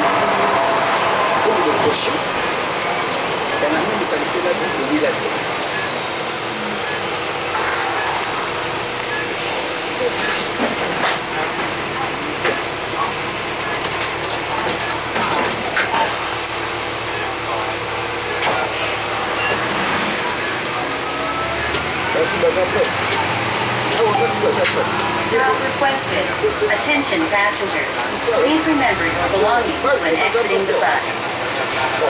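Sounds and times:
bus diesel engine running: 0.0s - 32.0s
road noise: 0.0s - 32.0s.

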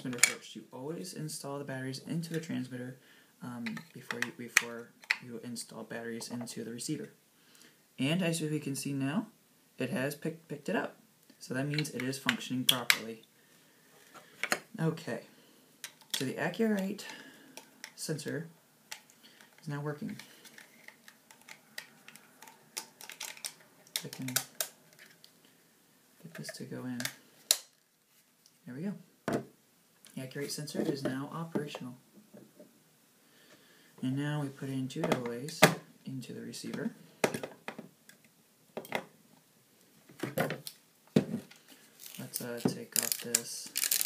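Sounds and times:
batteries clicking into compartment: 18.9s - 25.2s.

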